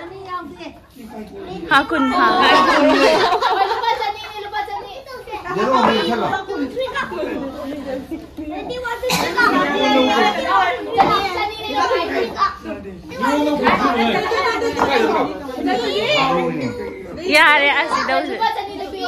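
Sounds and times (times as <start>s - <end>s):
people talking at once: 0.0s - 19.0s.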